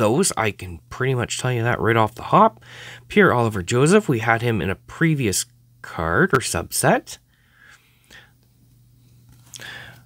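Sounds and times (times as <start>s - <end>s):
trading cards rustling in sleeves: 8.4s - 9.8s.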